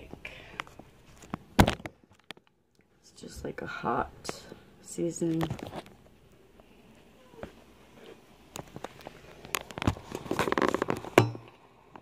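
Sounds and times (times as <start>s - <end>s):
plastic packaging crinkling: 8.6s - 11.2s.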